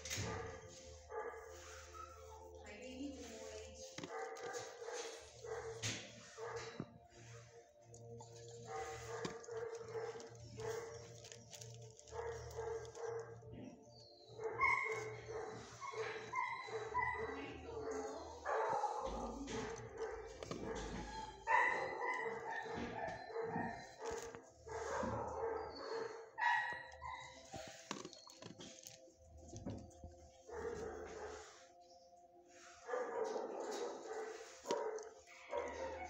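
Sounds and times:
dogs barking: 0:00.0 - 0:36.0.

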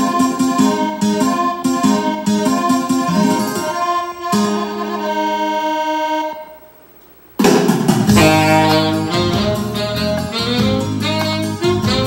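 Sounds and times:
saxophone with accompaniment: 0:00.0 - 0:06.8, 0:08.1 - 0:12.0.

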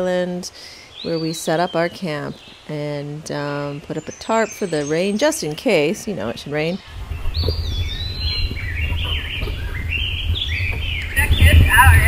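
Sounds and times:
songbird chirping: 0:00.0 - 0:12.0
steady low rumble: 0:06.8 - 0:12.0.

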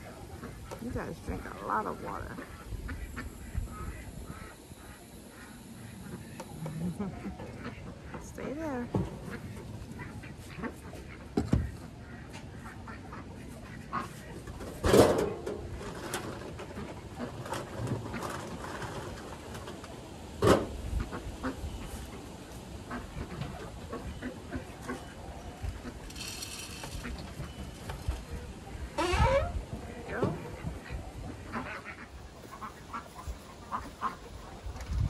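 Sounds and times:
ducks quacking: 0:00.0 - 0:14.9, 0:20.9 - 0:26.1, 0:26.7 - 0:35.0
knocks and clatter of wire hutches: 0:26.1 - 0:28.2.

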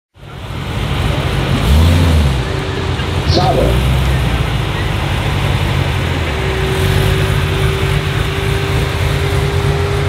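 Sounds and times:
car engine idling: 0:00.2 - 0:10.0
engine revving: 0:00.8 - 0:10.0.

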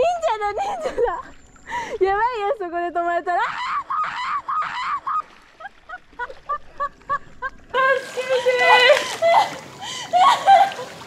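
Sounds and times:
high-pitched squealing laughter: 0:03.4 - 0:09.5.

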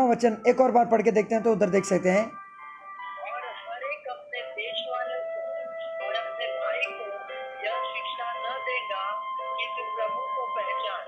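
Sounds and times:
person speaking: 0:00.0 - 0:02.4, 0:03.0 - 0:08.8
background music of held tones: 0:00.0 - 0:11.0.

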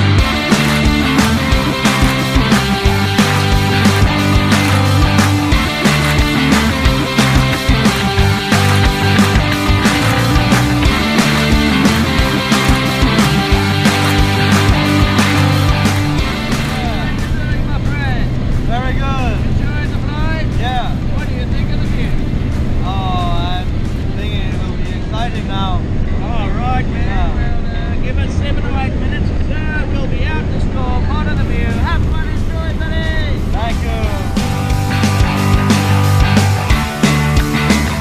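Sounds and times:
people talking: 0:00.0 - 0:36.4.

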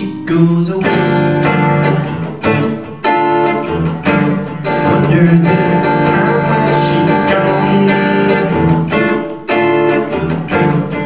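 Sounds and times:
man singing: 0:00.0 - 0:01.2, 0:04.7 - 0:08.9
acoustic guitar strumming: 0:00.0 - 0:11.0.

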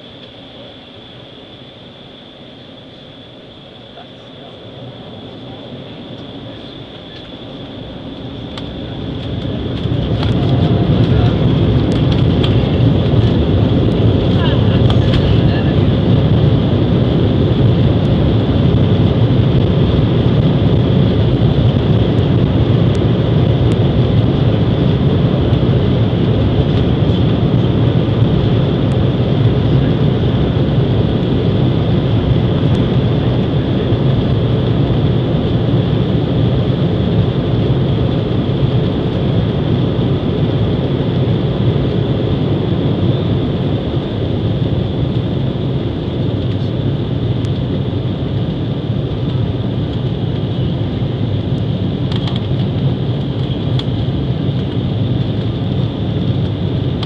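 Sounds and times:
high fan whine: 0:00.0 - 0:57.0
jet engines deep rumble: 0:00.0 - 0:57.0.

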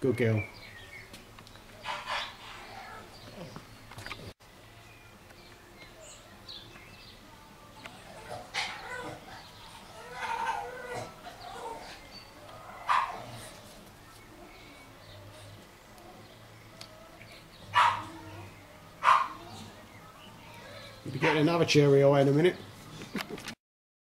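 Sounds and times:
faint birds chirping: 0:00.0 - 0:23.6
puppy whining and yelping: 0:08.0 - 0:12.0, 0:17.7 - 0:19.8.

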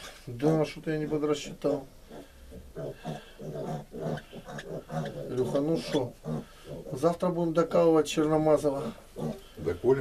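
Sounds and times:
piglets grunting: 0:00.5 - 0:07.4, 0:08.6 - 0:09.9.

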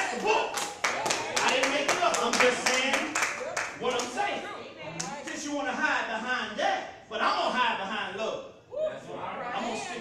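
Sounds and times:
hand clapping in rhythm: 0:00.0 - 0:04.2.

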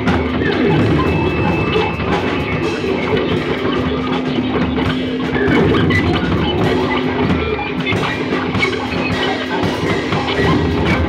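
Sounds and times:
drum kit playing: 0:00.0 - 0:11.0
guitar: 0:00.0 - 0:11.0.

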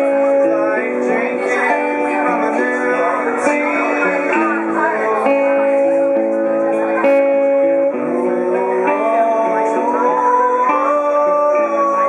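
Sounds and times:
acoustic guitar strumming chords: 0:00.0 - 0:12.0.

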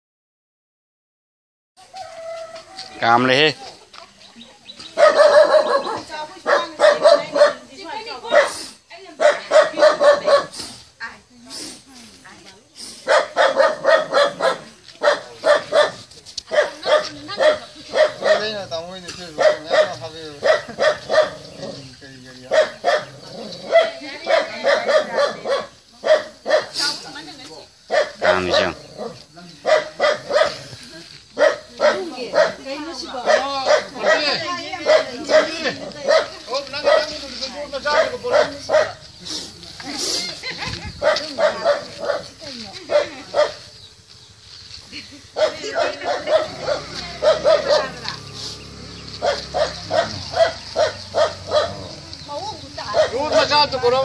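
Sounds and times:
people's voices: 0:01.8 - 0:54.0.

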